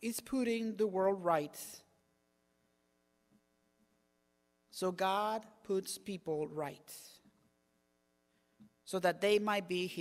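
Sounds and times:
faint electrical mains hum: 0:00.0 - 0:10.0
man speaking: 0:04.7 - 0:07.2, 0:08.8 - 0:10.0.

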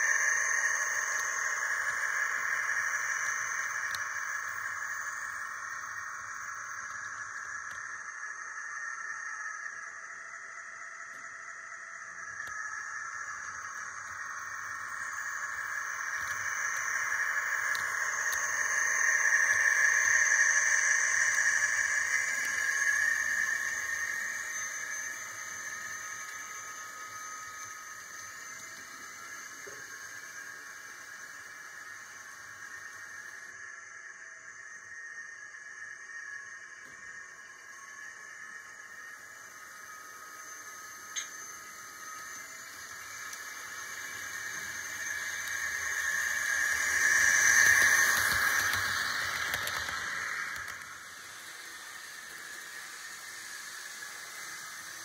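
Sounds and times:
model train motor whine: 0:00.0 - 0:55.0
wheel noise on rails: 0:00.0 - 0:55.0.

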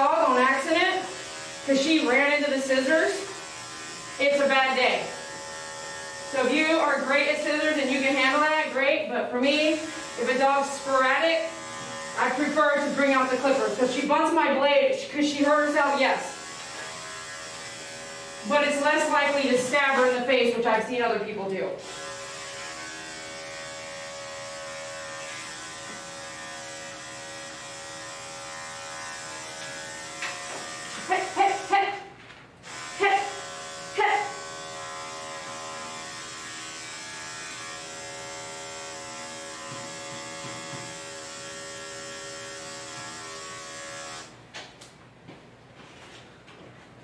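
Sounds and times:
electric clipper humming: 0:00.0 - 0:20.8, 0:21.4 - 0:45.0.

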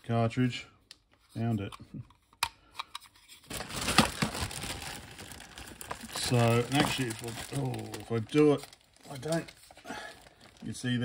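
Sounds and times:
plastic bag crinkling: 0:03.5 - 0:11.0.

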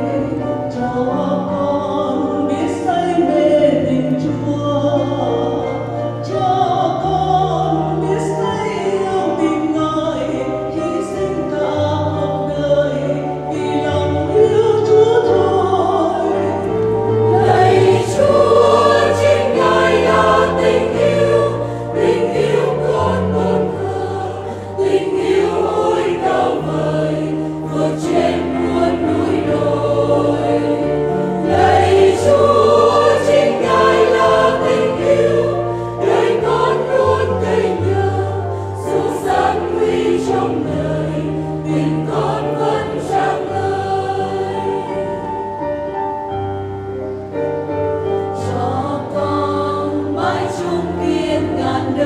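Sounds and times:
choir singing a hymn: 0:00.0 - 0:52.0.

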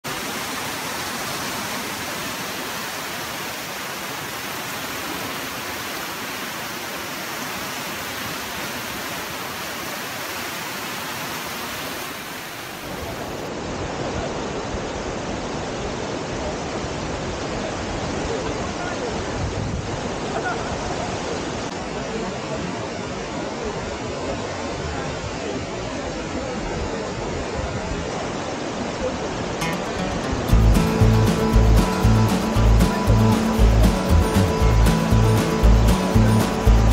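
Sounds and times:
river rapids rushing: 0:00.1 - 0:36.9.

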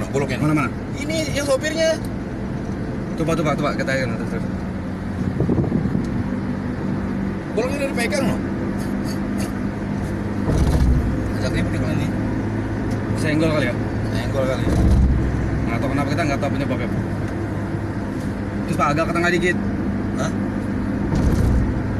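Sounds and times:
road noise: 0:00.0 - 0:21.9
vehicle engine hum: 0:00.0 - 0:21.9.

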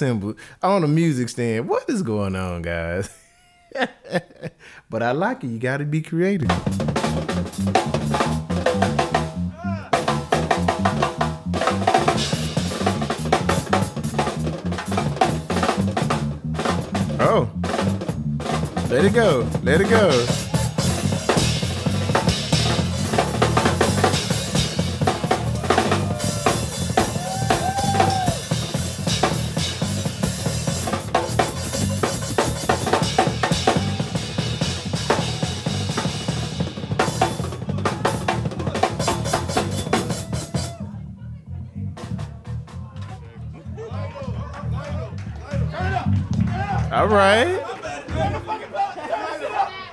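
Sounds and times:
drum kit played fast: 0:06.4 - 0:40.9.

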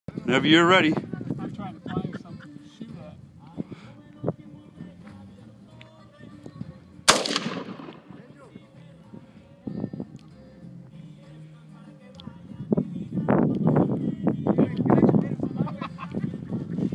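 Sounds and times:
rifle shot with echo: 0:07.1 - 0:08.3.

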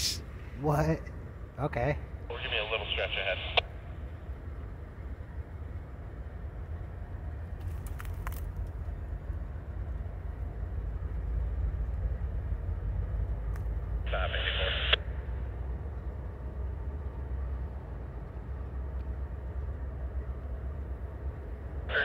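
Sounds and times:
diesel locomotives rumbling: 0:00.0 - 0:22.0.

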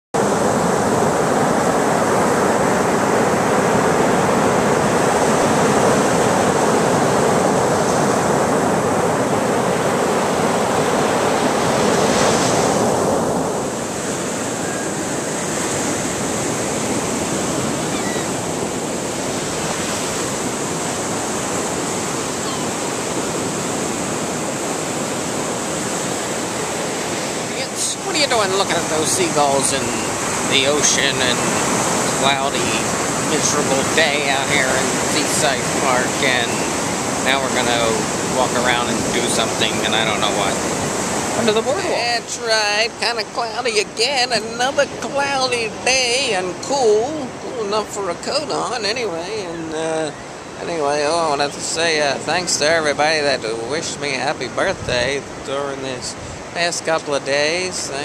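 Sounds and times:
surf washing up a beach: 0:00.2 - 0:58.0.

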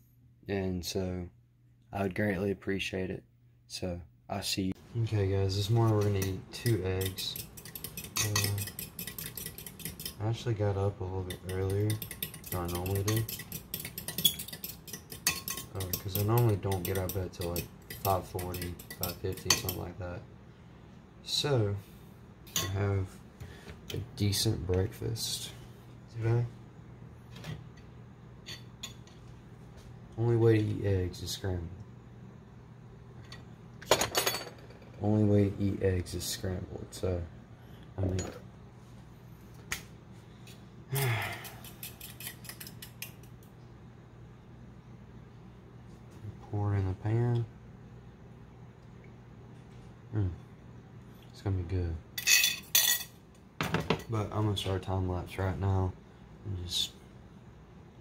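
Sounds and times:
utensils clinking against dishes: 0:05.9 - 0:10.2, 0:11.2 - 0:19.9, 0:41.1 - 0:43.3, 0:52.2 - 0:54.2
whisk clicking against bowl: 0:06.1 - 0:10.2, 0:11.2 - 0:19.9.

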